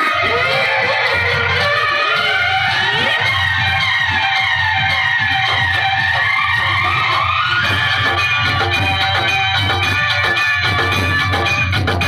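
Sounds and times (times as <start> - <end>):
siren-like gliding tone: 0.0 - 11.6
loud music through loudspeakers: 0.0 - 12.0.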